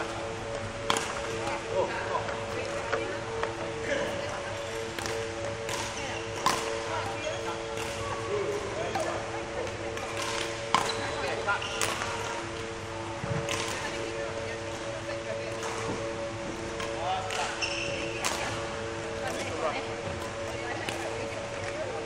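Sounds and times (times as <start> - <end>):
steady hum of sustained tones: 0.0 - 22.0
badminton rackets hitting shuttlecocks: 0.8 - 1.6, 2.6 - 12.7, 13.4 - 14.2, 15.4 - 19.6, 20.2 - 21.8.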